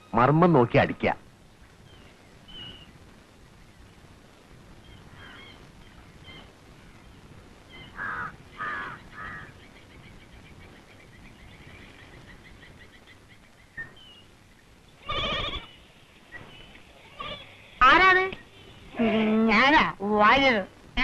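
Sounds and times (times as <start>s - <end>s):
birds chirping: 0.0s - 4.1s, 4.7s - 20.4s
goat bleating: 15.0s - 15.8s, 17.0s - 18.0s.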